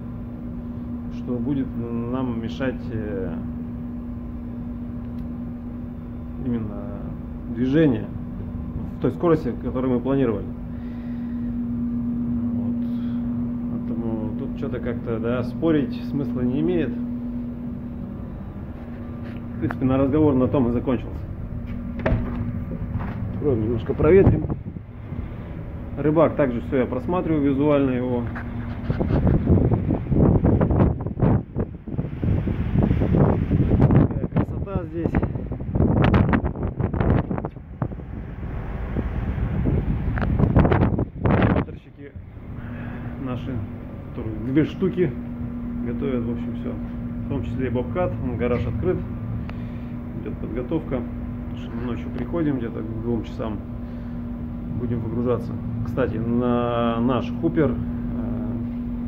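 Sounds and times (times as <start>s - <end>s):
ship machinery drone: 0.0s - 59.0s
wind buffeting microphone: 14.8s - 59.0s.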